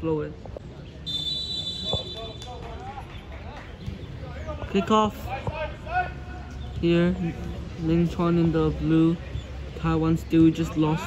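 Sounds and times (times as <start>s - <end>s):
referee's whistle long blast: 1.0s - 2.3s.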